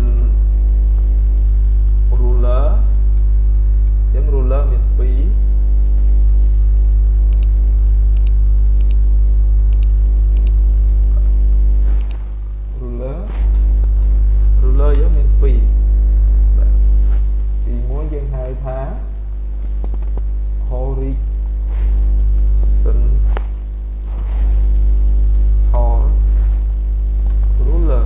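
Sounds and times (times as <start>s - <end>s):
voice: 0.0s - 0.4s, 2.1s - 3.0s, 4.1s - 5.5s, 11.0s - 11.5s, 12.7s - 13.5s, 14.6s - 15.8s, 16.5s - 16.8s, 17.6s - 19.2s, 20.6s - 21.3s, 22.5s - 23.5s, 25.7s - 26.4s, 27.6s - 28.0s
electrical mains hum: 0.0s - 28.0s
faint sharp clicks: 7.3s - 7.6s.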